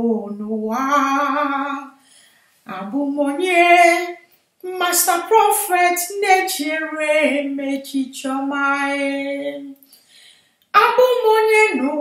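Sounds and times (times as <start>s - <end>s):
woman chanting unaccompanied: 2.7s - 9.8s, 10.8s - 12.0s.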